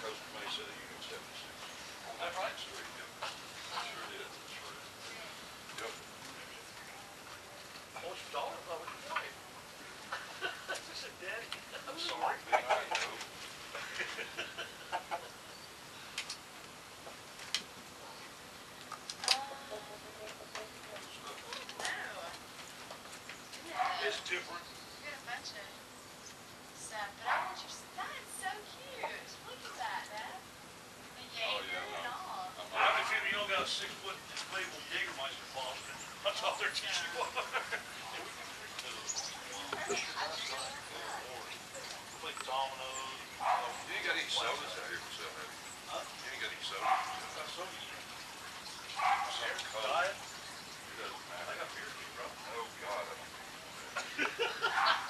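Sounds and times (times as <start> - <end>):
people's voices: 0.0 - 16.1, 19.2 - 22.4, 31.2 - 48.1
chickens clucking: 12.2 - 15.4
dog barking: 23.8 - 24.1, 27.3 - 27.7, 43.4 - 43.8, 46.8 - 47.2, 49.0 - 49.5, 54.6 - 55.0.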